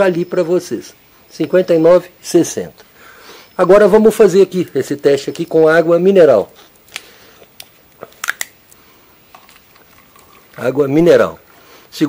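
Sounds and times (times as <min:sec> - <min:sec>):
plastic bottle clicks and crackles: 0:06.9 - 0:08.6.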